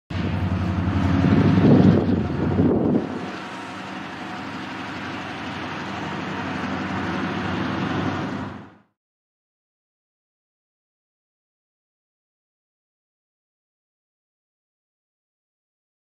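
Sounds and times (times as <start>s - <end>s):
diesel locomotive engine drone: 0.1s - 9.0s.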